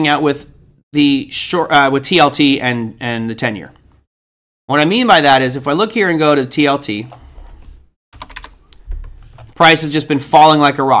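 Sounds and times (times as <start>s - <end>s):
computer keyboard typing: 8.2s - 9.6s.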